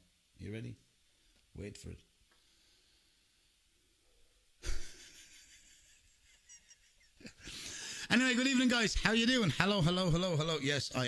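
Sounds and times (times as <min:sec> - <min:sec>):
man breathing: 0:02.3 - 0:03.5, 0:07.4 - 0:08.1
man laughing: 0:04.6 - 0:08.1.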